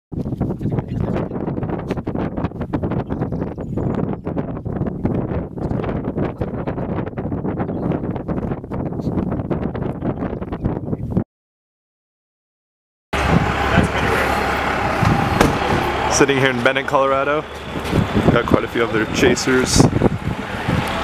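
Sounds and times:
wind buffeting microphone: 0.1s - 11.2s, 13.2s - 21.0s.

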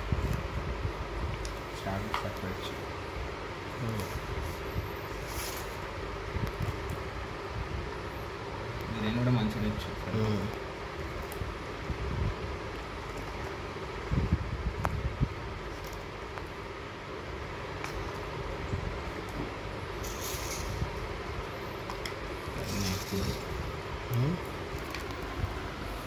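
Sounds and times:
paper cups and boxes handled: 21.8s - 23.5s
papery rustle: 22.6s - 23.5s.

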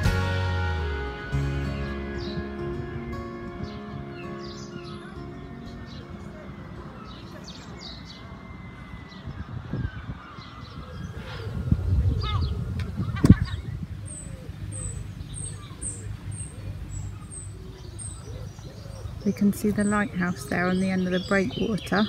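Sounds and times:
birds calling: 0.0s - 22.0s
low rumble: 10.9s - 18.2s.

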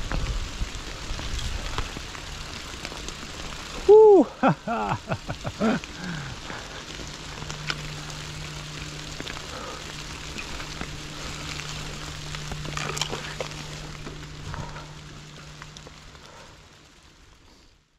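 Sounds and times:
bike clicks and rattles: 0.0s - 3.9s, 4.6s - 16.6s
low hum: 0.0s - 17.9s.

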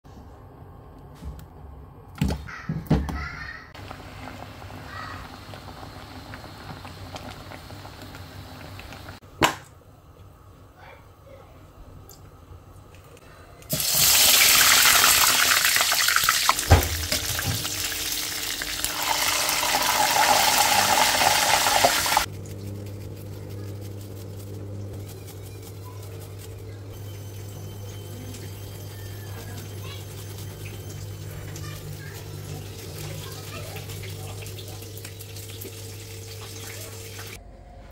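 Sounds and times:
water boiling: 3.8s - 9.2s, 13.7s - 22.8s, 26.9s - 37.4s
steady low hum: 22.2s - 33.1s.

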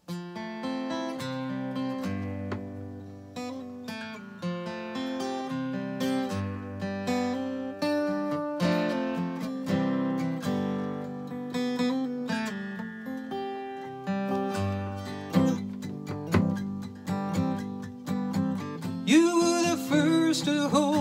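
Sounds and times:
acoustic guitar chords: 0.0s - 21.0s.

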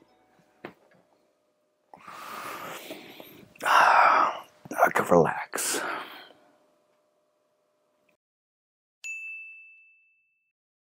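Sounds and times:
high-pitched bell chime: 9.0s - 10.5s.

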